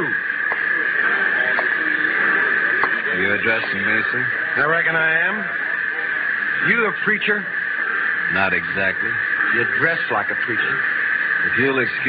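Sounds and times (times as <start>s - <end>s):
steady hiss: 0.0s - 12.0s
voice from radio drama: 0.0s - 12.0s.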